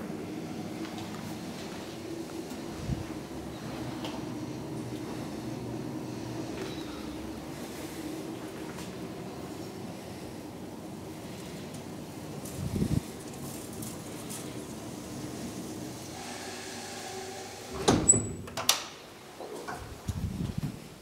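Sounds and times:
hydraulic elevator hum: 0.0 - 18.5
elevator door sliding open: 11.8 - 18.7
loud clunk of elevator stopping: 17.4 - 18.6.

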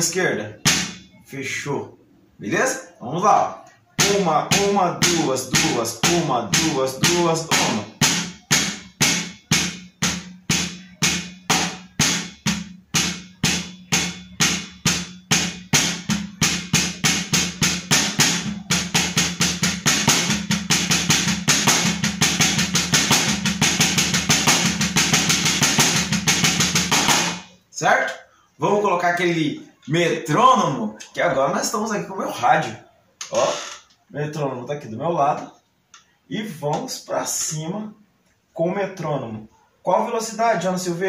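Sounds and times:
drumsticks striking a practice pad: 0.7 - 1.1, 4.0 - 16.2.

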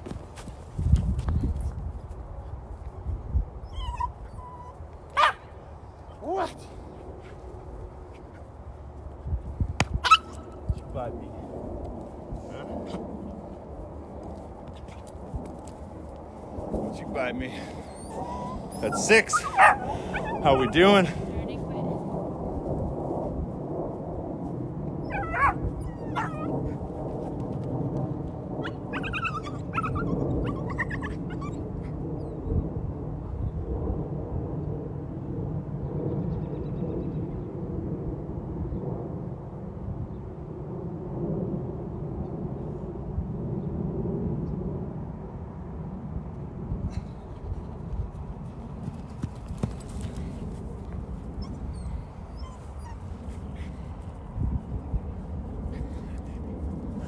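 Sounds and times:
dog whining: 3.6 - 5.4, 17.8 - 20.5, 25.0 - 26.8, 28.6 - 32.4, 51.4 - 53.1.

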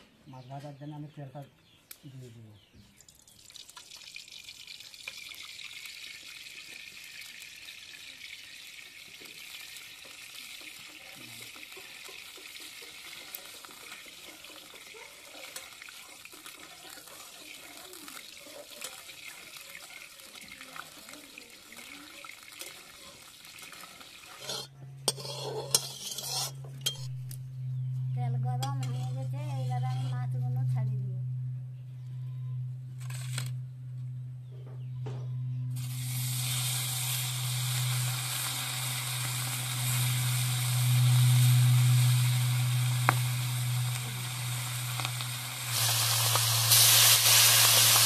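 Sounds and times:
oil sizzling in a pan: 3.4 - 27.1, 35.8 - 48.0
steady low hum: 24.7 - 48.0
wavering tone: 26.6 - 48.0.

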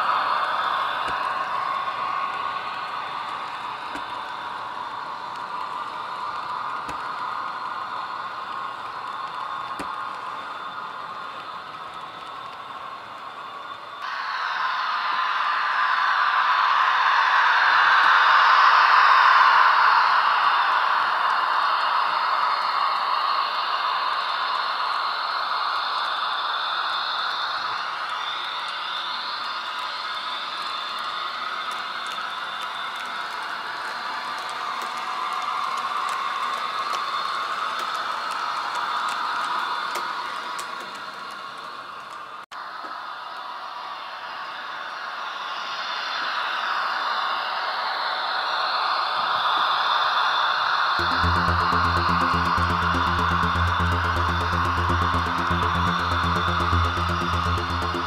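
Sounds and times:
model train running on track: 0.0 - 57.9.

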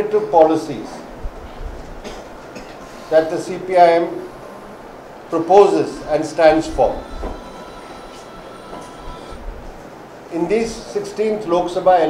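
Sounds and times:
low room rumble: 1.1 - 10.6.

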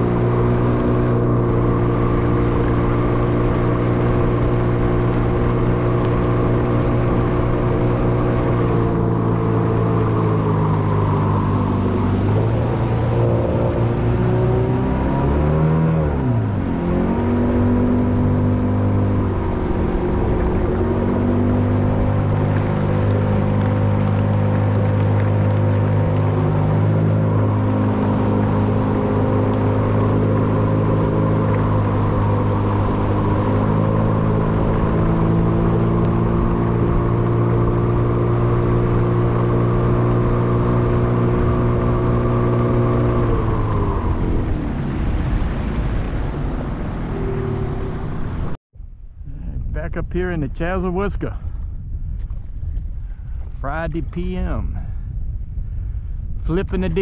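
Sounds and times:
boat motor running: 0.0 - 57.0.

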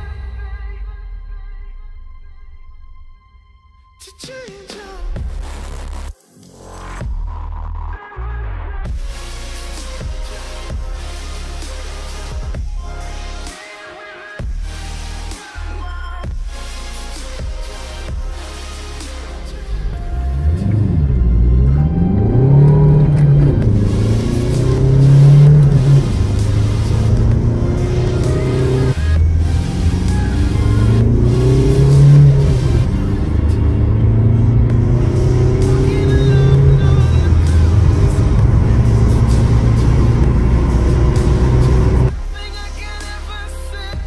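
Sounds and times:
music: 0.0 - 44.0
diesel engine accelerating: 18.4 - 42.2.

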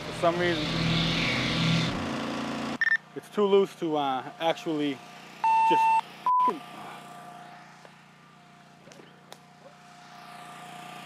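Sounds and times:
loud electronic beep: 2.8 - 3.0, 5.4 - 6.6.

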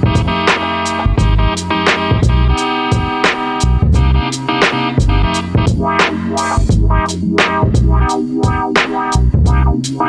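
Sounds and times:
instrumental hip-hop beat: 0.0 - 10.0.

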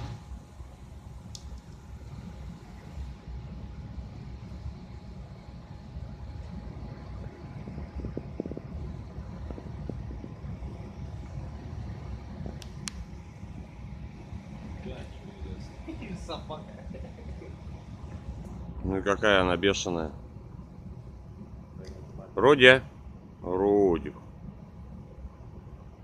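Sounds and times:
faint constant hum: 0.0 - 26.0
low outdoor rumble: 0.0 - 26.0.

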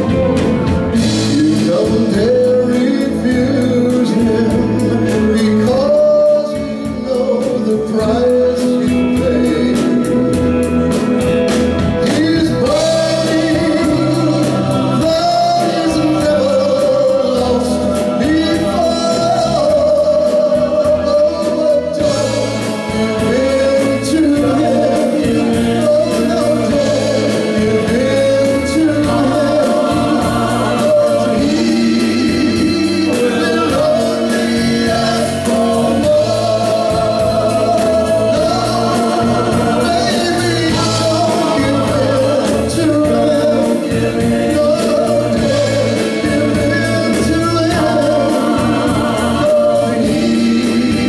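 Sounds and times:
electric guitars: 0.0 - 51.0
steady drumbeat: 0.0 - 51.0
vocal group singing in harmony: 0.0 - 51.0.

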